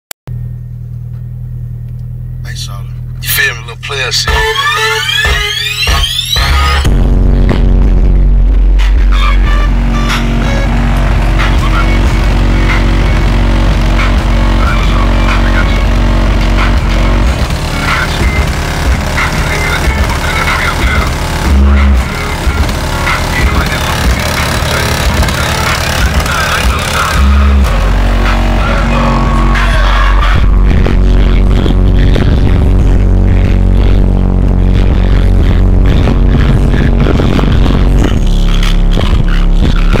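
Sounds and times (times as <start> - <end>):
bass-heavy electronic music: 0.3 - 40.0
heavy bass hits: 4.2 - 40.0.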